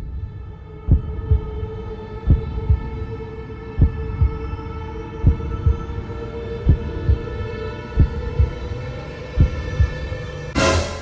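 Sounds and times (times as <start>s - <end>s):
humming drone: 0.0s - 11.0s.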